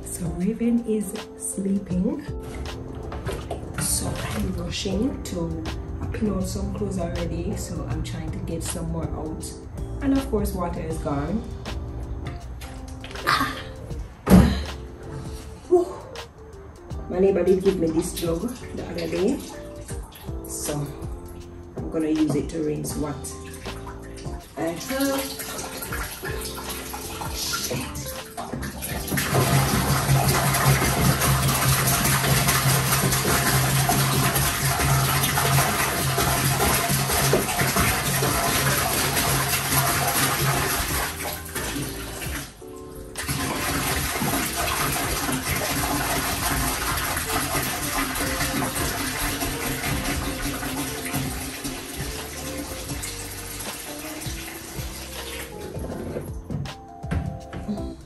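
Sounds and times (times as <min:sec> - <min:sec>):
water pouring into a sink: 0:02.4 - 0:05.2, 0:17.6 - 0:21.0, 0:23.2 - 0:42.6, 0:43.2 - 0:55.8.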